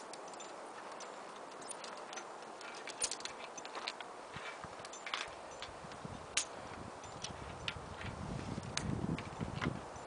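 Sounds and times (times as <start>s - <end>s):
carabiners clicking on steel cable: 0.0s - 10.0s.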